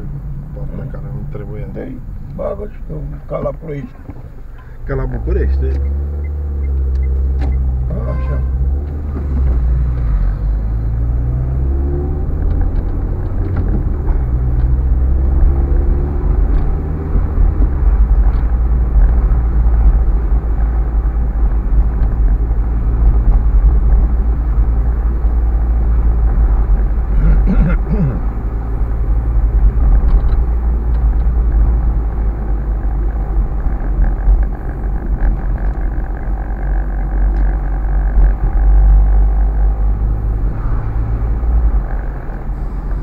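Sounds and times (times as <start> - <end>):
car engine and road rumble: 0.0 - 43.0.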